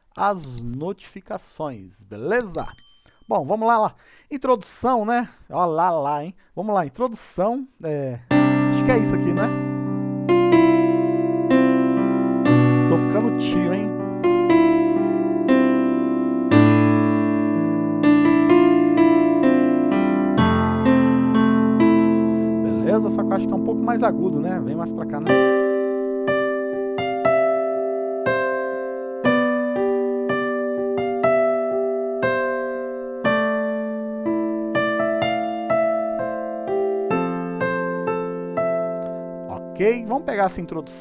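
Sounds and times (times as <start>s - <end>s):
electric piano chords: 8.3s - 41.0s.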